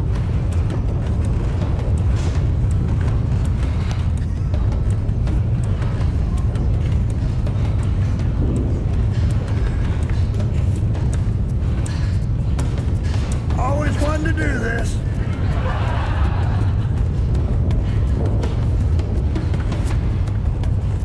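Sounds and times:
dramatic background music: 0.0 - 21.0.

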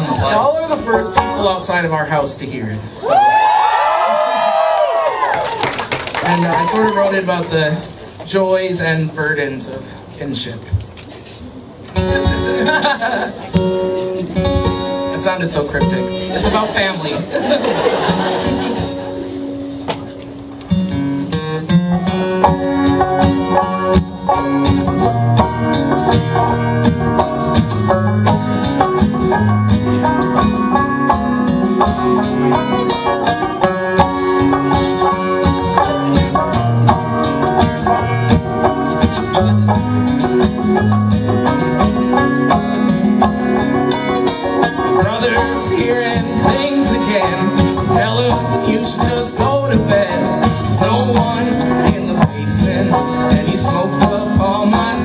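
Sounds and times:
banjo picking: 0.0 - 2.8, 11.8 - 55.0
strummed guitar chords: 0.0 - 3.0, 11.6 - 55.0.

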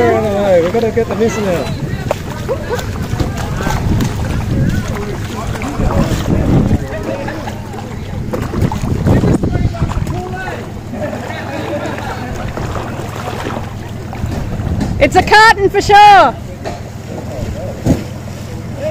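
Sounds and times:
wind buffeting microphone: 0.0 - 16.5.

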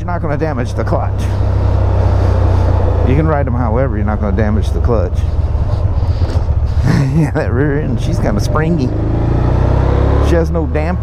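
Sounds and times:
motorcycle engine rumbling: 0.0 - 11.0
road noise: 0.0 - 11.0.

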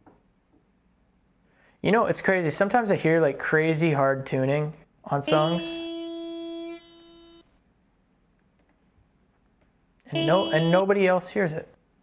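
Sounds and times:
man singing a steady note: 5.2 - 6.9, 10.1 - 11.0.

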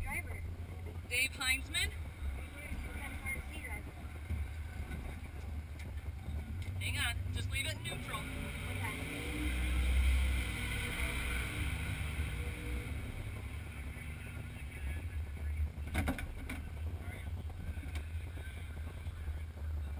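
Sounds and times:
vehicle engine rumbling: 0.0 - 19.9.

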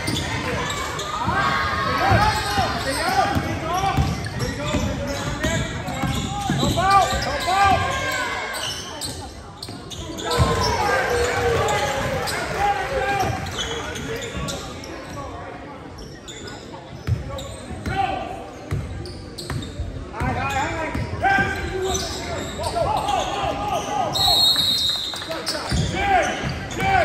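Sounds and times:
basketball bouncing on wooden floor: 3.3 - 6.8
high whistle: 24.1 - 25.2.

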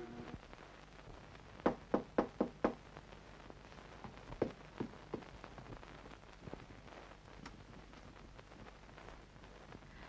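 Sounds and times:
knocking on a door: 1.6 - 2.8.

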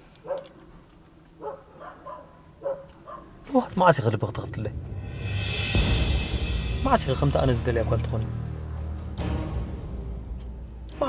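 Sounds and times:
faint dog barks: 0.2 - 0.6, 1.4 - 3.5.

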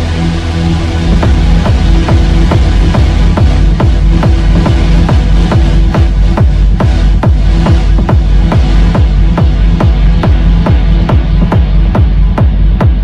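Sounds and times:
sustained bass line: 0.0 - 13.0
techno kick drum: 0.0 - 13.0.

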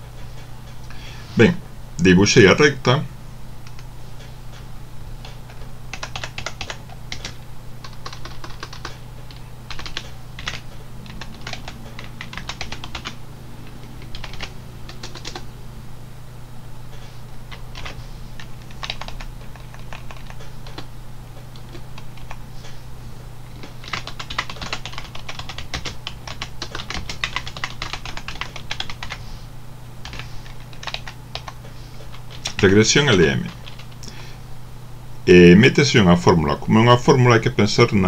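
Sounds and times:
low steady hum: 0.0 - 38.0
typing on computer keyboard: 5.2 - 13.2, 14.0 - 15.4, 17.5 - 20.9, 23.6 - 29.2, 30.0 - 32.6, 33.5 - 33.9.

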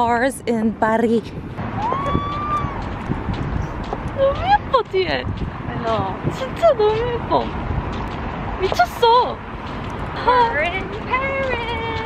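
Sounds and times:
woman talking: 0.0 - 1.3, 4.2 - 7.6, 8.6 - 9.4, 10.2 - 12.0
footsteps on stone paving: 1.8 - 12.0.

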